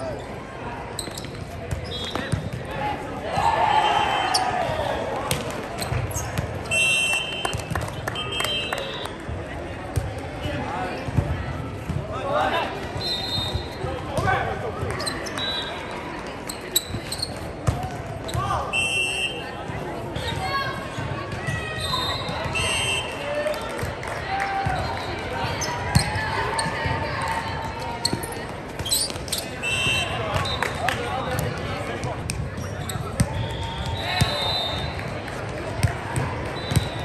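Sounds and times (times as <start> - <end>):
sneakers squeaking on floor: 0.9 - 2.6, 5.8 - 7.6, 12.9 - 19.3, 24.7 - 26.9, 27.9 - 30.6, 32.4 - 34.9, 36.5 - 37.0.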